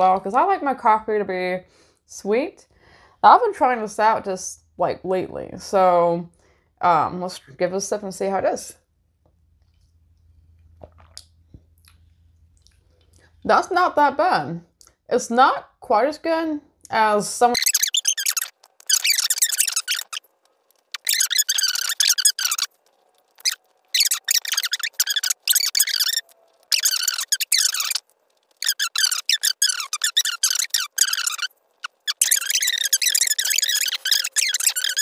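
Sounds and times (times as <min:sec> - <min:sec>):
sped-up high-pitched woman's speech: 0:03.2 - 0:06.2, 0:13.5 - 0:17.7.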